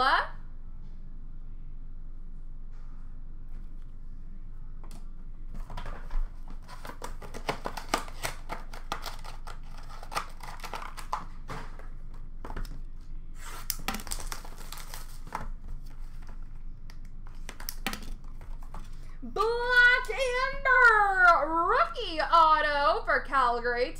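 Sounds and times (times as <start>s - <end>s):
card packaging tearing and crinkling: 5.8s - 12.7s, 13.4s - 16.5s.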